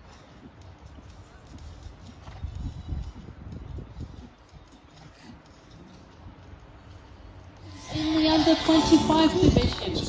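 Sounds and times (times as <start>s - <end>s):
horse hoofbeats on sand: 0.0s - 7.0s.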